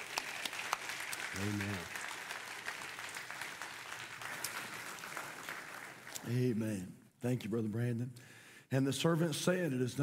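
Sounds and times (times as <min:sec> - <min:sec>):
congregation applauding: 0:00.0 - 0:06.6.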